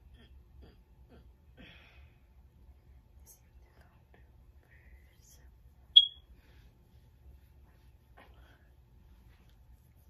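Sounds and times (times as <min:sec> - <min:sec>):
short high-pitched beep: 0:06.0 - 0:06.2.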